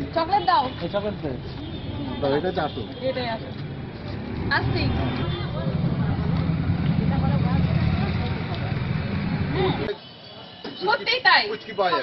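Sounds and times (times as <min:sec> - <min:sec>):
people talking: 0:06.9 - 0:10.0.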